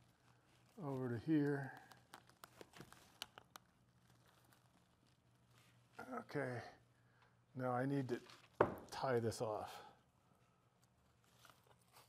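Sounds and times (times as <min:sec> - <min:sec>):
faint clicks of handling line: 0:00.2 - 0:04.7.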